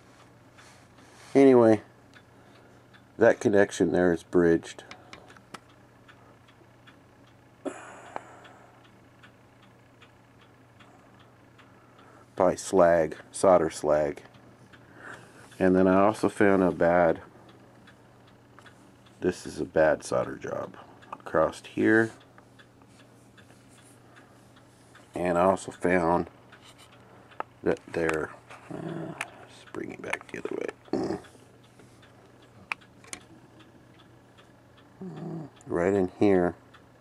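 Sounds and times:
low steady hum: 0.0 - 37.0
faint regular ticking: 0.1 - 37.0.

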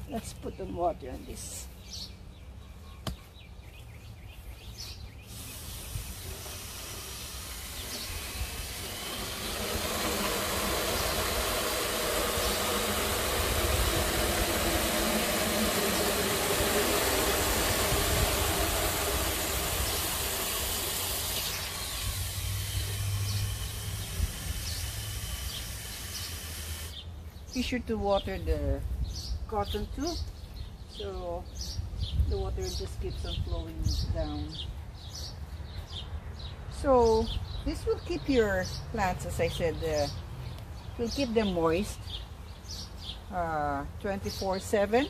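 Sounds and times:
hose water rushing into jug: 5.3 - 27.0.

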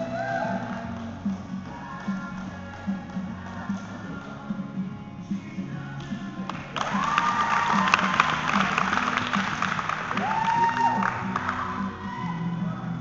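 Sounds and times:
audience clapping and cheering: 0.0 - 4.4, 6.0 - 12.6
background music: 0.0 - 13.0
high rising shouts: 6.8 - 12.8.

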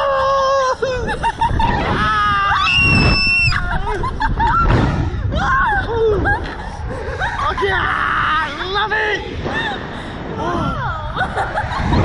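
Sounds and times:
people screaming and laughing: 0.0 - 8.6, 9.4 - 12.0
wind rushing over microphone: 0.7 - 12.0.

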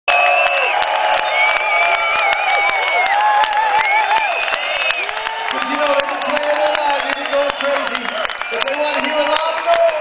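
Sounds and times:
crowd cheering and clapping: 0.1 - 10.0.

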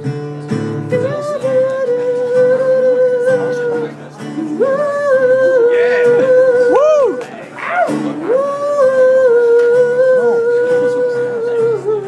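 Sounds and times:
strummed acoustic guitar: 0.0 - 12.0
person singing long notes: 0.8 - 12.0.

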